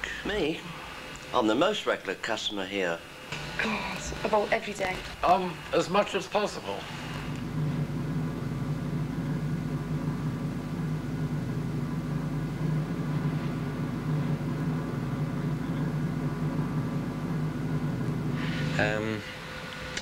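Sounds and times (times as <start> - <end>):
low machine hum: 0.0 - 20.0.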